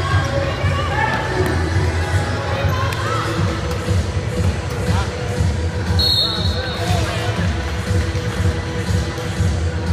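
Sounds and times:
crowd talking and calling out: 0.0 - 9.9.

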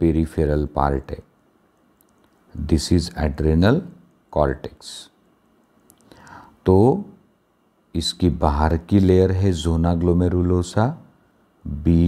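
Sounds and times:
man speaking: 0.0 - 1.3, 2.5 - 5.2, 6.6 - 7.2, 7.9 - 12.0
soft breath: 6.0 - 6.6.

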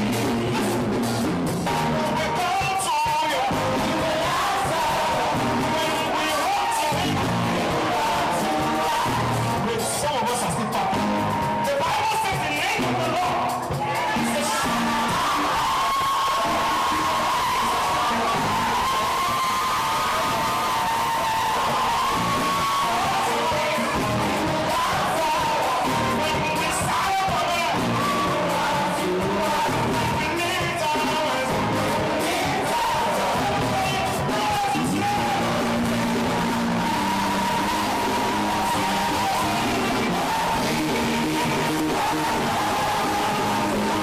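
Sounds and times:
gospel band playing: 0.0 - 44.0
noisy crowd: 0.0 - 44.0.

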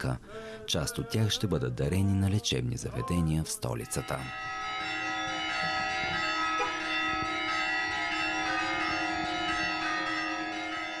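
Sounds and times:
church bells ringing: 3.0 - 11.0.

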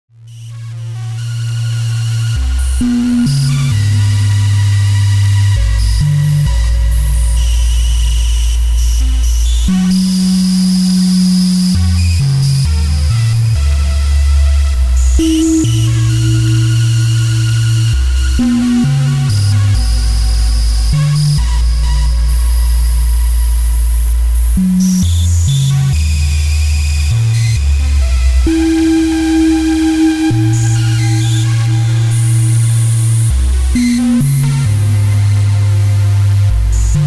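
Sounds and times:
low synthesizer note: 0.2 - 26.3, 26.9 - 37.0.

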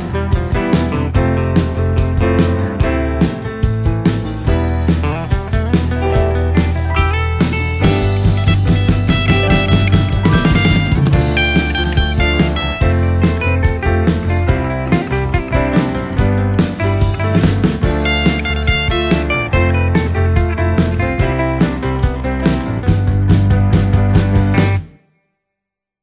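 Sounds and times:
lead guitar melody: 0.0 - 25.0
rock band playing: 0.0 - 25.0.

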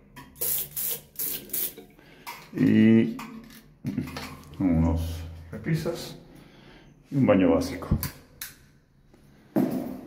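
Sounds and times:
water spraying into a sink: 0.4 - 1.8.

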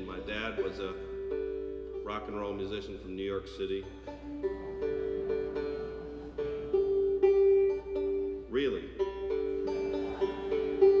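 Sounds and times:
bluegrass string instrument notes: 0.0 - 11.0.

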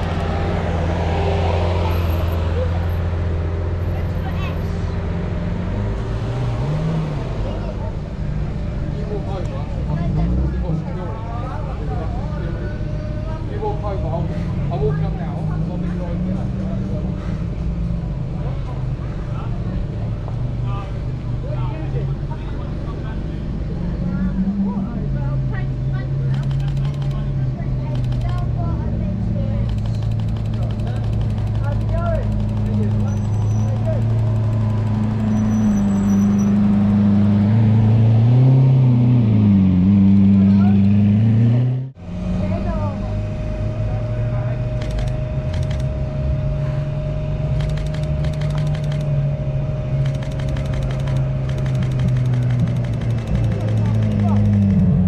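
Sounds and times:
car engine at low revs: 0.0 - 55.0.

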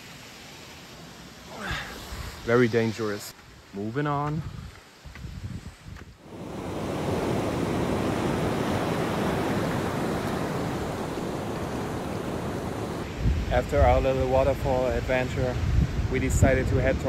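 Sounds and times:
ocean surf breaking: 6.2 - 16.1.

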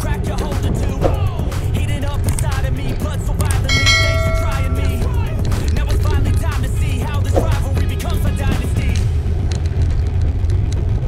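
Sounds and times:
bell chime ringing: 3.7 - 5.7
background music: 3.7 - 8.4.

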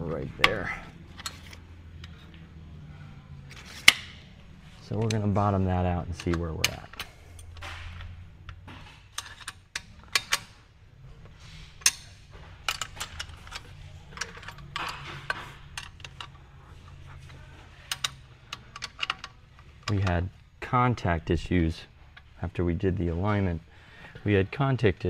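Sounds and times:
faint low hum: 0.0 - 25.0
metal tools clicking and clinking: 0.4 - 2.4, 4.8 - 10.6, 11.4 - 20.2.

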